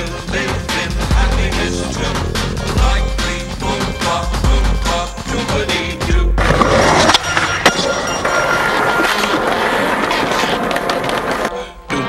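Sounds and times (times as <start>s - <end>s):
music: 0.0s - 7.7s, 11.4s - 12.0s
skateboard clacks: 6.4s - 11.5s
skateboard wheels rolling on pavement: 6.4s - 11.5s.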